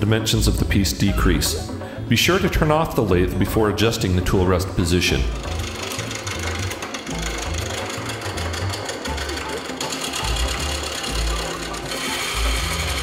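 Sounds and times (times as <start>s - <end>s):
lathe chisel chattering rattle: 5.1s - 13.0s.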